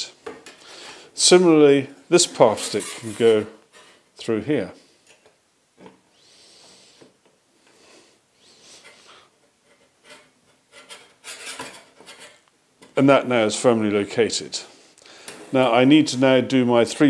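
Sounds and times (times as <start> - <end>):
metal scraping and rubbing: 2.2 - 4.0, 8.7 - 12.4.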